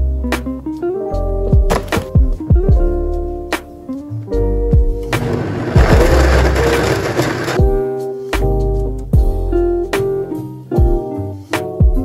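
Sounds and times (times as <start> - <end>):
blender running: 5.2 - 7.6.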